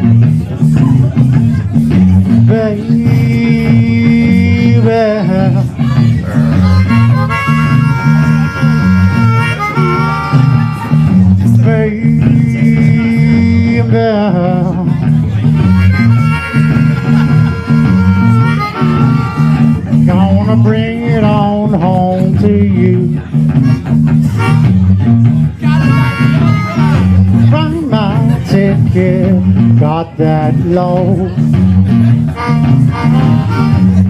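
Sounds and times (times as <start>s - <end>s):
bass and electric guitar riff: 0.0s - 34.0s
blues harmonica: 1.9s - 14.0s, 14.6s - 28.4s, 31.2s - 34.0s.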